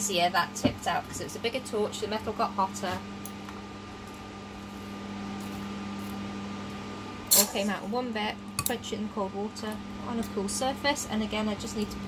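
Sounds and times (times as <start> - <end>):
extractor fan humming: 0.0 - 12.0.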